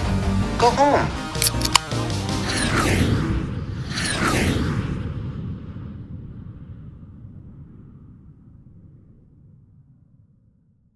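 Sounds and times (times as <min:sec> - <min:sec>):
low rumbling logo sound effect: 0:02.4 - 0:10.9.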